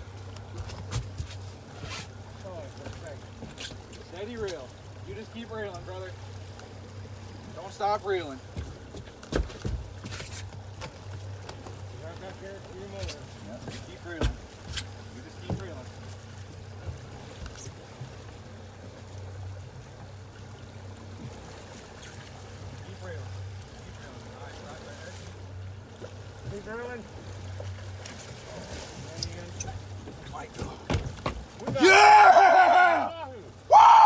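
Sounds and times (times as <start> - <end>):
outboard motor humming: 0.0 - 34.0.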